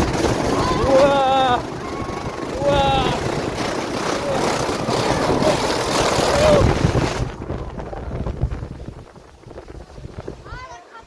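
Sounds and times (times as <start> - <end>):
snow tube sliding down slope: 0.0 - 11.0
child calling out: 0.5 - 3.2.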